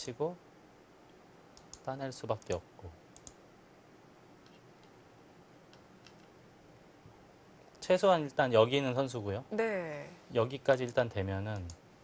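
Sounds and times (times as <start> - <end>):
faint clicks: 1.1 - 2.6, 3.2 - 3.4.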